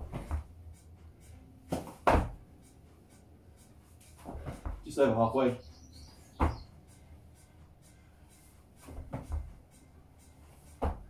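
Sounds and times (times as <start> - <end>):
body thudding on floor mat: 1.7 - 2.4, 4.2 - 4.8, 6.4 - 6.7, 8.8 - 9.6, 10.8 - 11.0
scuffs on mat: 4.1 - 4.9.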